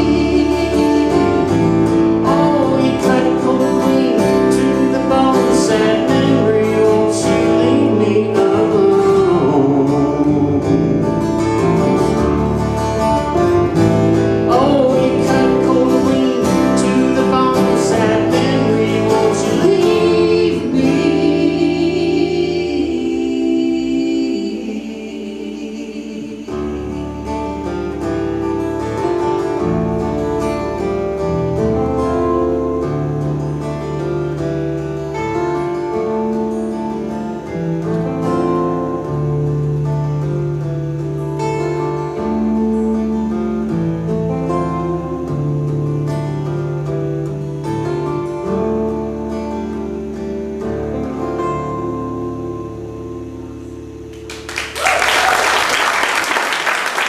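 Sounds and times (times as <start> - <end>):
acoustic guitars and bass playing: 0.0 - 57.0
audience applause: 54.2 - 57.0.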